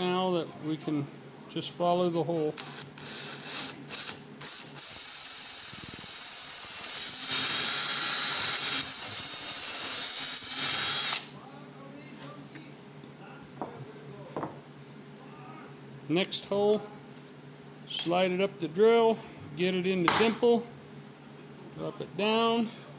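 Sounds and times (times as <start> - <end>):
cordless drill squealing: 3.0 - 11.2.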